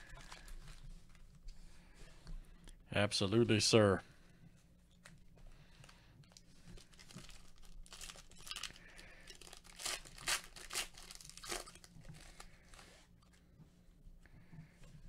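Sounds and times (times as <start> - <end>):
foil wrapper tearing and crinkling: 6.8 - 12.5.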